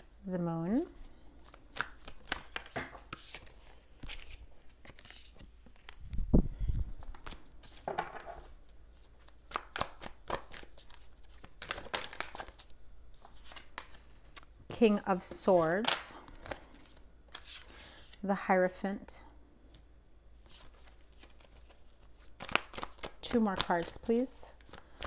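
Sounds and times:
cards being shuffled: 0:01.4 - 0:06.2, 0:06.9 - 0:14.5, 0:20.4 - 0:25.0.

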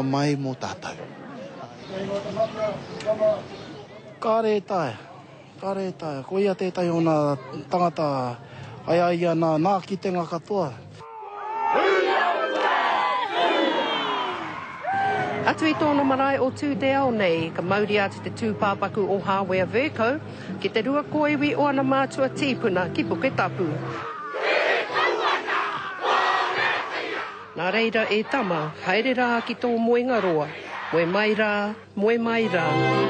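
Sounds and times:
crowd shouting together: 0:11.1 - 0:16.1, 0:23.9 - 0:31.4, 0:32.4 - 0:33.0.

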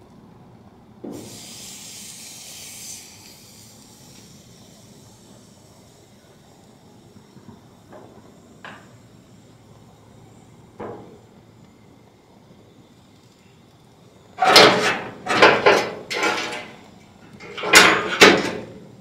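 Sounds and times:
chicken sizzling on grill: 0:01.1 - 0:06.6.

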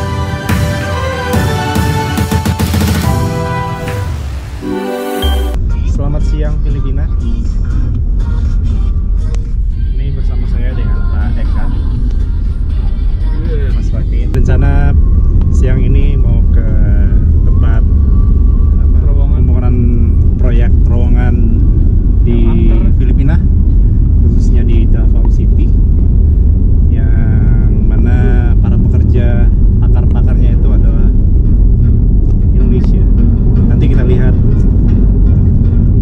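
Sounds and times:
car rumble from inside cabin: 0:05.6 - 0:36.0
men talking: 0:13.3 - 0:17.8, 0:19.0 - 0:21.6, 0:22.2 - 0:23.4, 0:24.4 - 0:25.7, 0:26.9 - 0:31.2.

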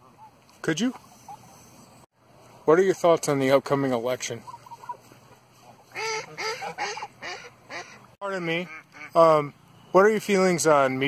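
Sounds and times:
goose honking: 0:04.4 - 0:09.3.

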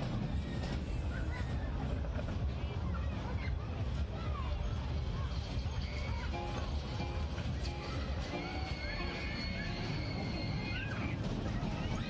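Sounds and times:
children squealing: 0:07.8 - 0:12.0.

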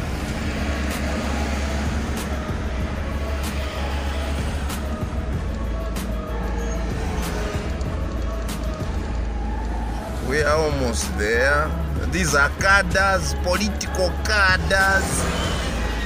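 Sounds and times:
car driving rumble: 0:00.0 - 0:16.0
music playing: 0:00.0 - 0:16.0
sharp ticks: 0:07.1 - 0:09.8.

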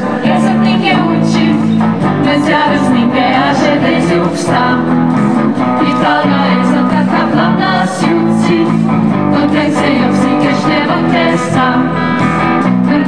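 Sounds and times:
bass guitar: 0:00.0 - 0:13.0
electric guitar: 0:00.0 - 0:13.0
women singing together: 0:00.0 - 0:13.0.

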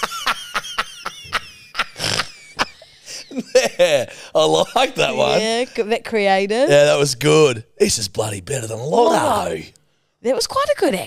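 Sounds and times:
man laughing hard: 0:00.0 - 0:05.4.

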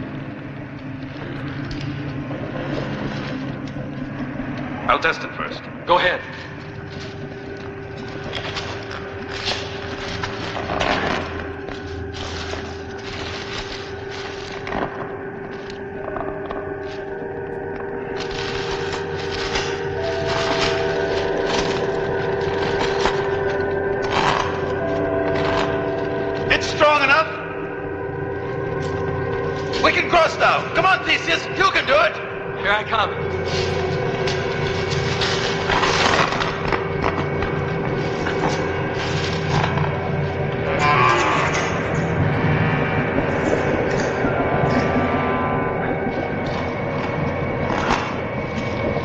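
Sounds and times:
eerie music with held chords: 0:00.0 - 0:49.0
rumbling noise bed: 0:00.0 - 0:49.0.

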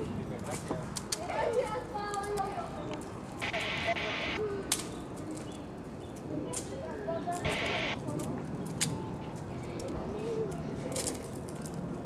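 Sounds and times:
indistinct distant voices: 0:01.2 - 0:11.5.

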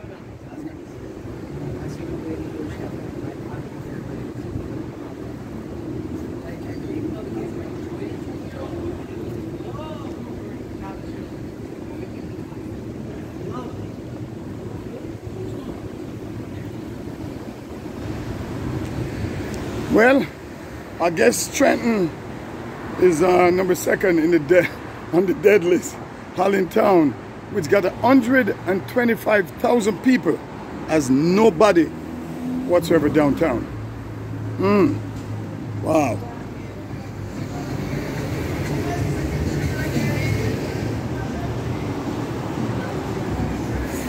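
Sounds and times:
distant voices: 0:00.0 - 0:44.0
traffic hum: 0:00.0 - 0:44.0.

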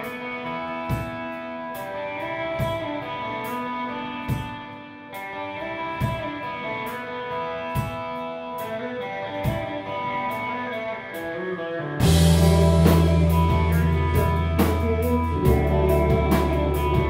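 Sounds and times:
full rock band playing: 0:00.0 - 0:17.0
ringing electric guitar: 0:00.0 - 0:17.0.

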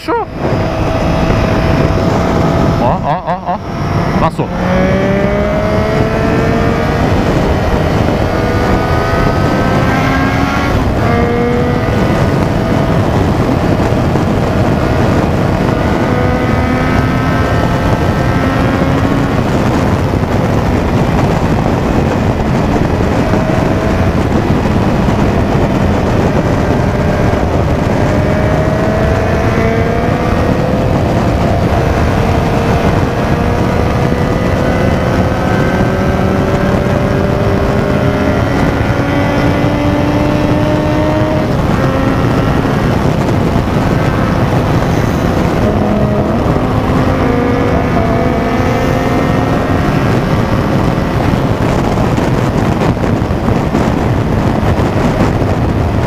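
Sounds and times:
motorcycle engine accelerating: 0:00.0 - 0:56.0
wind noise on microphone: 0:00.0 - 0:56.0.

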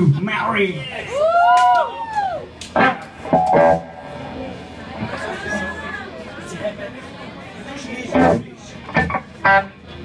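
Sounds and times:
electric guitar gliding tone: 0:02.8 - 0:05.0
plucked electric guitar chords: 0:02.8 - 0:05.0.

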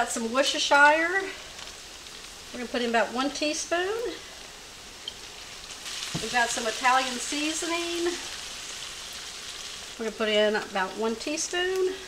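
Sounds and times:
meat sizzling in a skillet: 0:00.0 - 0:12.0.

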